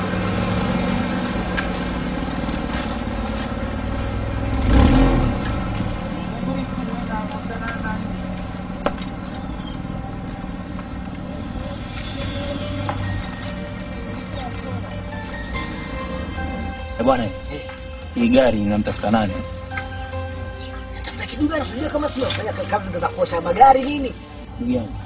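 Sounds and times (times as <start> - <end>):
car engine running: 0.0 - 25.0.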